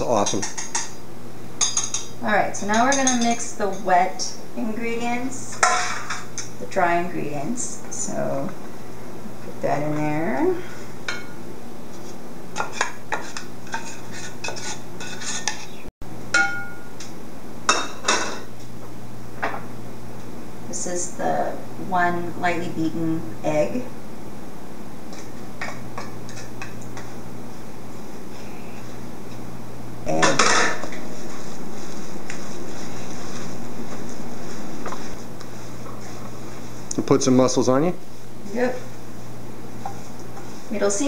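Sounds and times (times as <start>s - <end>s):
wooden spoon scraping bowl: 12.0s - 15.8s.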